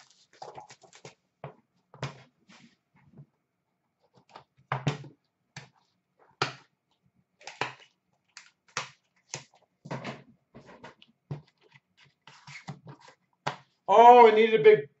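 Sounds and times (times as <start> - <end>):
cards and packaging rustling: 0.0 - 1.2.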